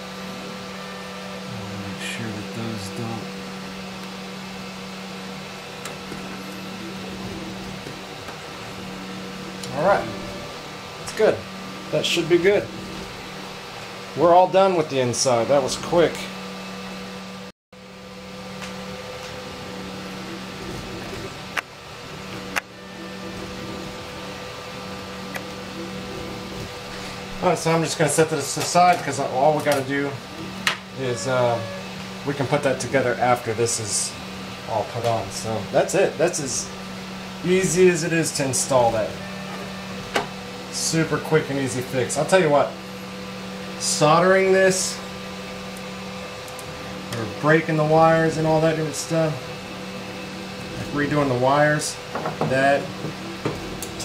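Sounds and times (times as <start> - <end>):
steady fan hum: 0.0 - 54.0.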